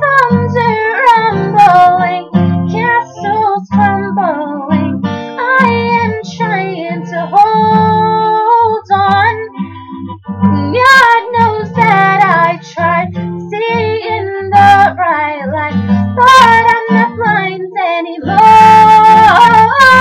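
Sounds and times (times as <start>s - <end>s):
girl singing pop song: 0.0s - 20.0s
strummed acoustic guitar: 0.0s - 20.0s.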